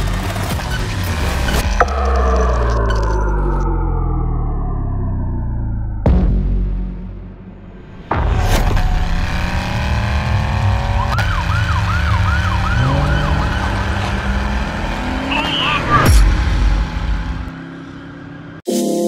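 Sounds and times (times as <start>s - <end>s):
low rumble: 1.5s - 8.3s
police siren wailing and yelping: 11.1s - 14.4s.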